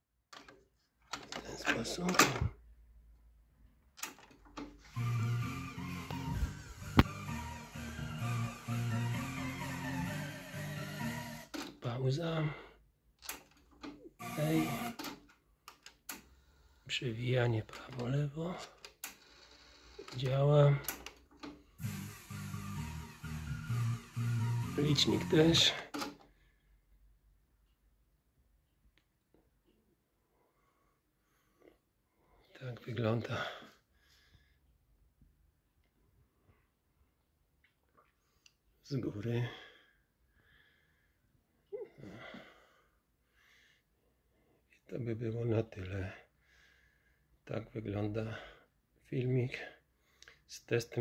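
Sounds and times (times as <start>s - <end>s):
music playing from tape: 5.2s - 11.3s, 21.9s - 25.6s.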